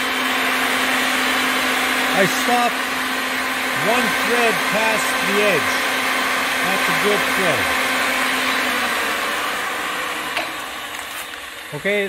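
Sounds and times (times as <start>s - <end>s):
electric motor running: 0.0s - 12.0s.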